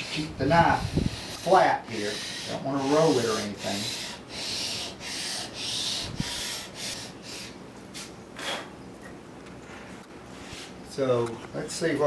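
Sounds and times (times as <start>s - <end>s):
blade rasping on sandpaper: 0.0s - 7.1s.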